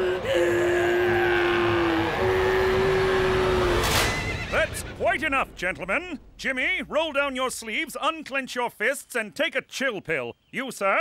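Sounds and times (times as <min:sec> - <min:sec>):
rushing noise: 0:00.1 - 0:07.8
horse whinnying: 0:01.2 - 0:05.0.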